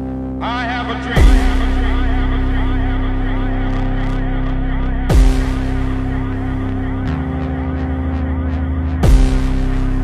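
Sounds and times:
progressive house music: 0.0s - 10.0s.

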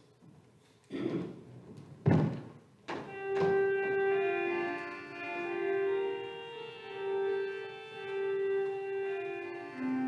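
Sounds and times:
keyboard sustained chord: 3.1s - 10.0s.

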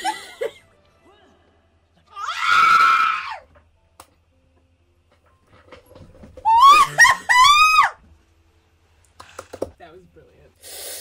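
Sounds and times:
person screaming: 2.1s - 3.4s.

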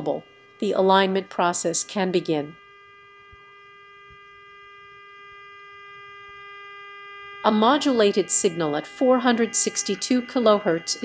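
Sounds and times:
buzzy test tone from loudspeaker: 0.0s - 11.0s.

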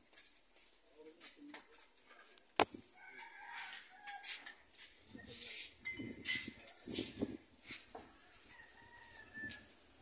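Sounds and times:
rooster crowing: 2.9s - 4.5s, 8.0s - 9.8s.

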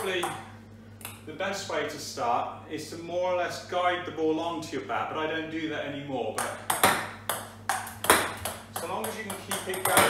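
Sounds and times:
table tennis ball pings and knocks: 6.4s - 10.0s.

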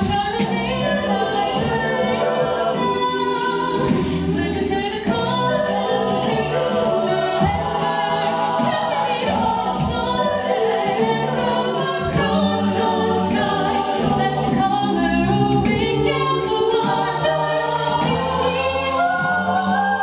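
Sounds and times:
a cappella vocal harmonies: 0.0s - 20.0s.

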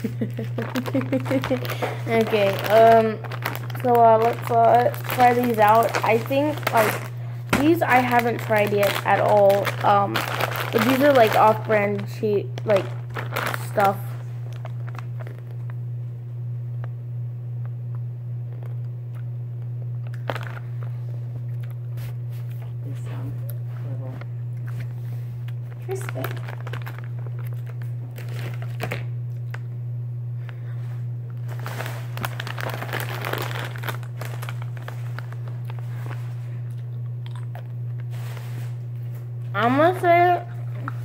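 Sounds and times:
candy crunching while chewed: 0.0s - 15.8s, 18.5s - 22.8s, 24.6s - 29.7s, 30.4s - 39.2s
plastic bag crinkling: 0.0s - 15.8s, 20.0s - 21.0s, 25.7s - 29.7s, 31.3s - 38.8s
steady low hum: 0.0s - 41.0s.

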